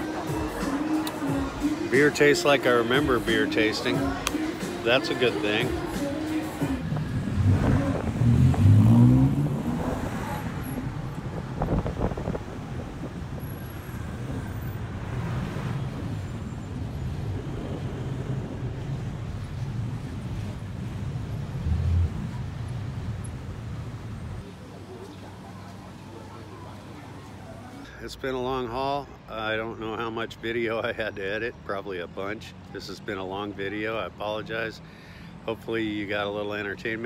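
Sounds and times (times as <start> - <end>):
heavy city traffic: 0.0 - 37.0
small vehicle engine revving: 6.8 - 19.1.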